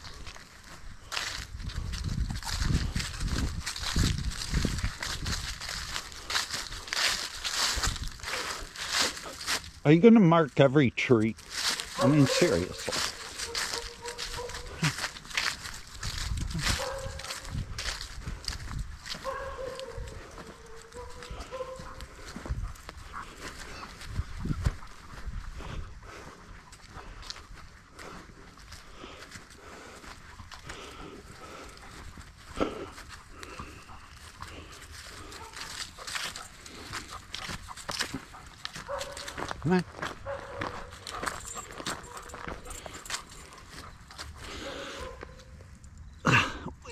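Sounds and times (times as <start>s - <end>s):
footsteps on grass and leaves: 0.0s - 46.9s.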